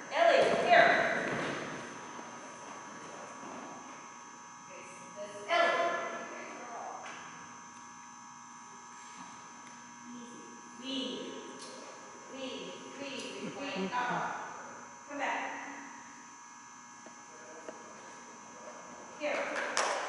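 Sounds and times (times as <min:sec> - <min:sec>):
electrical hum with buzz: 0:00.0 - 0:20.0.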